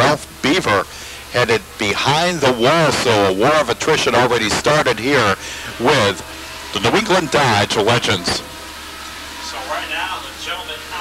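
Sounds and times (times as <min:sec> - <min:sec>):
racing car engines droning: 0:00.0 - 0:11.0.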